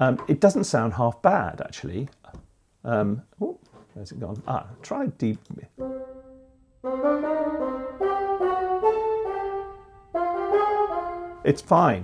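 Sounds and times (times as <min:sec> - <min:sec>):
orchestral wind instrument chords: 0:05.8 - 0:11.6.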